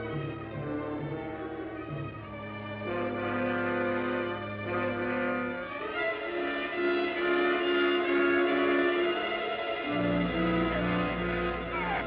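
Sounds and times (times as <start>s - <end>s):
film score with held chords: 0.0s - 12.0s.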